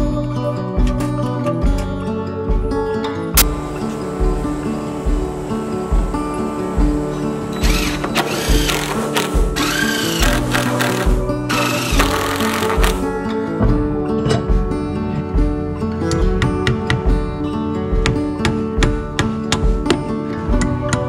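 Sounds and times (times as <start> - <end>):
acoustic guitar music: 0.0 - 21.0
impact driver driving screws into wood: 7.6 - 13.1.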